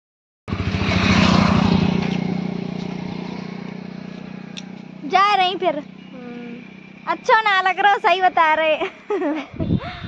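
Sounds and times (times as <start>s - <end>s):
small engine pulsing hum: 0.5s - 10.0s.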